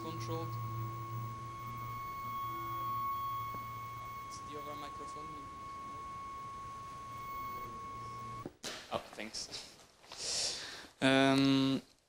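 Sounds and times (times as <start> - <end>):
high-pitched electronic tone: 0.0 - 8.4
low hum: 0.0 - 8.4.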